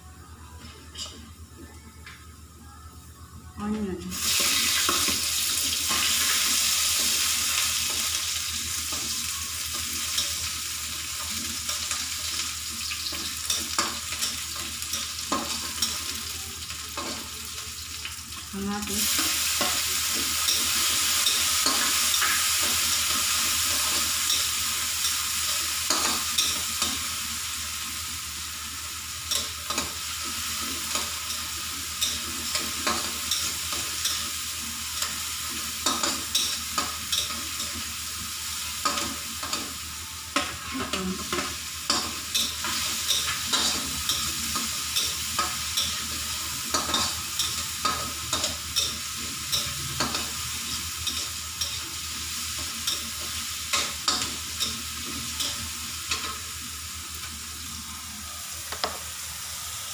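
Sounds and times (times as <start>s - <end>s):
food sizzling in oil: 4.1s - 59.9s.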